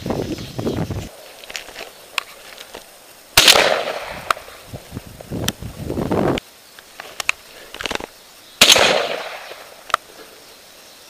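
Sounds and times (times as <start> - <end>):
shotgun shot: 3.4 - 4.3, 8.6 - 9.7.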